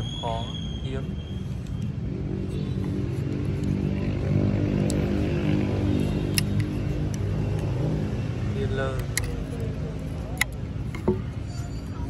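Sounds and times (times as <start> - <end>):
vehicle engine humming: 0.0 - 12.0
speakers clicking when handled: 6.0 - 7.8, 8.8 - 11.4.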